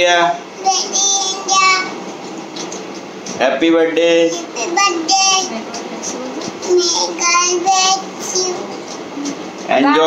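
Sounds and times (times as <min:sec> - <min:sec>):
child singing: 0:00.6 - 0:01.9, 0:04.3 - 0:05.6, 0:06.6 - 0:08.8.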